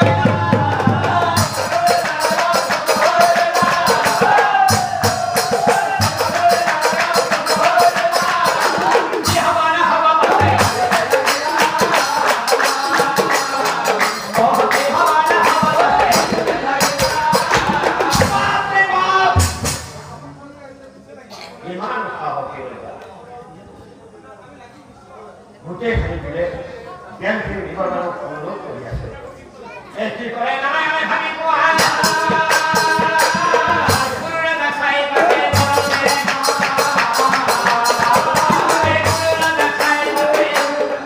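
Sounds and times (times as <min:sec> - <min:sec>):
devotional singing: 0:00.0 - 0:20.2, 0:30.0 - 0:41.0
kettledrums beating: 0:00.0 - 0:20.2, 0:35.2 - 0:41.0.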